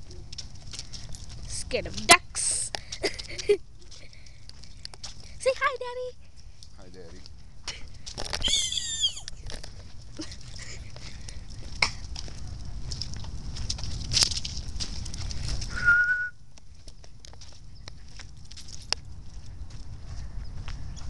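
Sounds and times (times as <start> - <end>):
wind rumble on microphone: 7.3 - 21.0
short high whistle-like note: 15.7 - 16.4.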